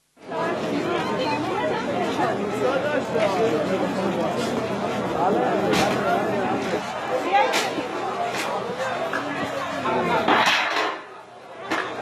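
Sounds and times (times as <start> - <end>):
crowd chatter: 0.2 - 12.0.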